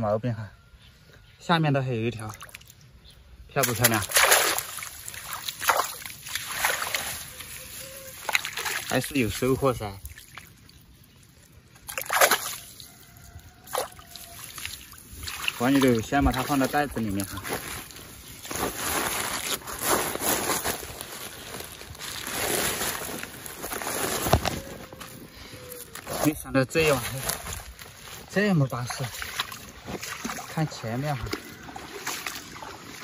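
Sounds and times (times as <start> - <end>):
water splashing and sloshing: 2.1 - 2.9, 3.6 - 33.0
plastic sack and net rustling: 15.6 - 28.4.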